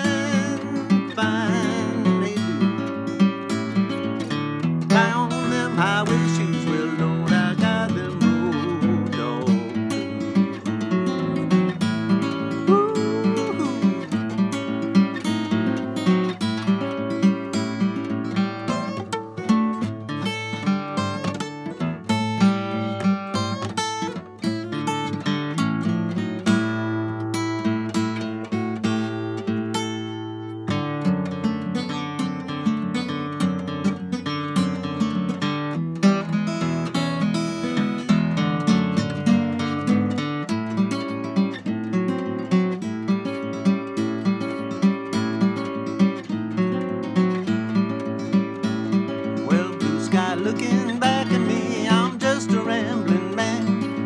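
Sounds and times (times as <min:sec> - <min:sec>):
solo acoustic blues guitar: 0:00.0 - 0:54.0.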